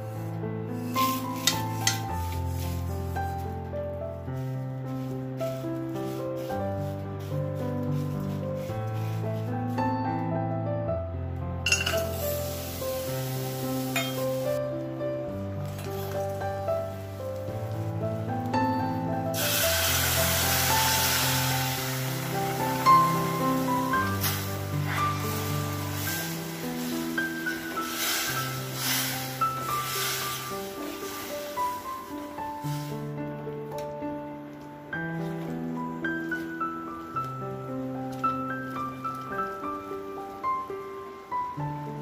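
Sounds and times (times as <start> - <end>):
sizzling in a pan: 0.0 - 3.4, 11.7 - 14.7, 19.3 - 33.2
slow sustained background music: 0.0 - 42.0.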